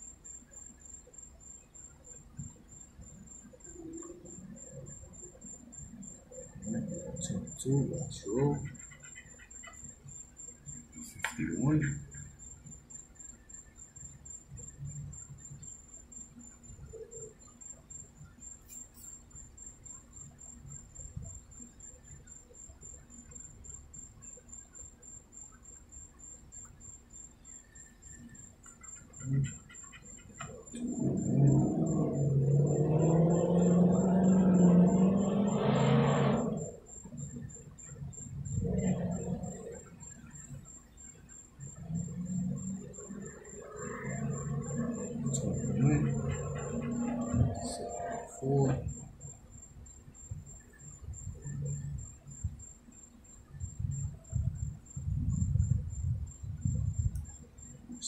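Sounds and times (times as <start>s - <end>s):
faint high-pitched whine: 0.0s - 58.0s
low wavering hum: 1.5s - 8.8s, 27.5s - 58.0s.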